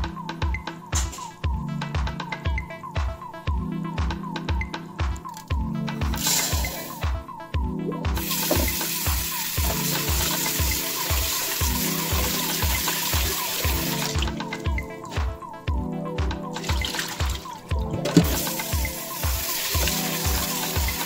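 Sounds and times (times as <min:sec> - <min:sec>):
background music with beat: 0:00.0 - 0:21.0
tap water running into pot: 0:08.2 - 0:14.4, 0:16.6 - 0:21.0.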